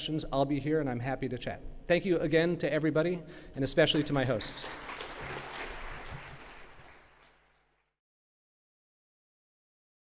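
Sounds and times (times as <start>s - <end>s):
audience applauding: 4.4s - 8.0s.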